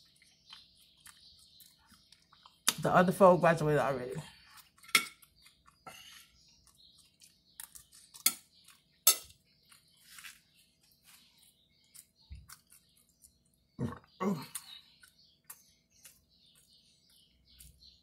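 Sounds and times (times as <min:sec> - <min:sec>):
eating noises: 0:00.0 - 0:03.0, 0:04.3 - 0:18.0
fork clinking on a plate: 0:04.8 - 0:05.2, 0:08.1 - 0:09.4.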